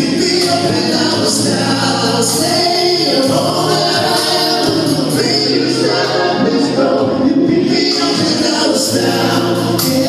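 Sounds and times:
band accompaniment: 0.0 - 10.0
male group singing in harmony: 0.0 - 10.0.

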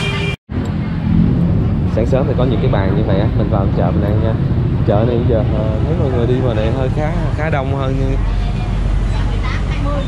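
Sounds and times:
busy market street noise: 0.0 - 10.0
motorbike traffic rumble: 0.0 - 10.0.

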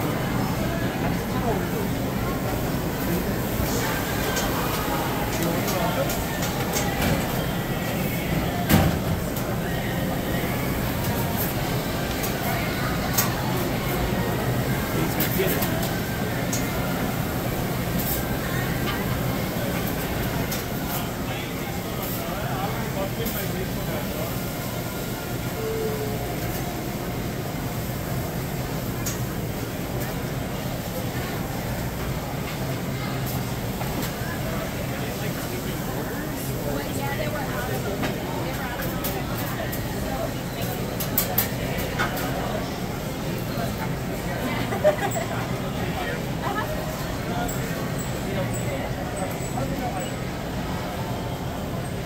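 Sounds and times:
crowd chatter: 0.0 - 52.0.

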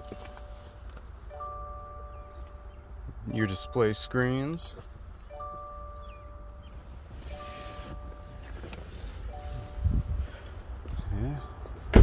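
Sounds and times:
car warning chime: 0.0 - 10.5.

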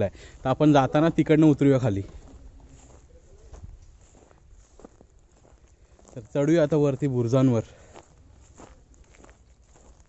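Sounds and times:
faint footsteps walking: 0.0 - 10.0.

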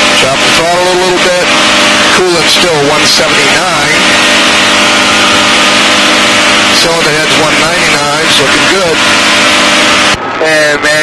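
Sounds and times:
light aircraft engine in flight: 0.0 - 11.0
loud radio hiss: 0.0 - 11.0.

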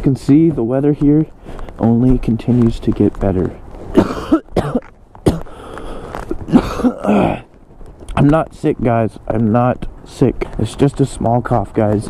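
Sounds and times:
man coughing: 3.9 - 5.7, 6.3 - 7.5.

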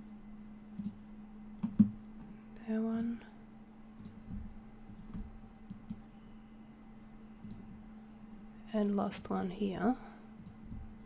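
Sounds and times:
faint low hum: 0.0 - 11.0
computer mouse clicks: 0.8 - 1.0, 4.0 - 6.0, 7.4 - 7.7, 10.4 - 10.8.

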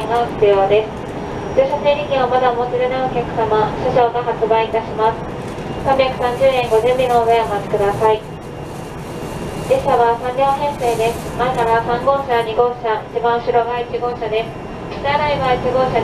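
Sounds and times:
train rumbling inside passenger car: 0.0 - 16.0.

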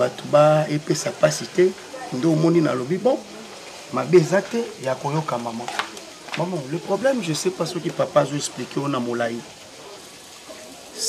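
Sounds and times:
man speaking: 0.0 - 3.3, 3.9 - 5.8, 6.4 - 9.5
faint crackling hiss: 0.0 - 11.0.

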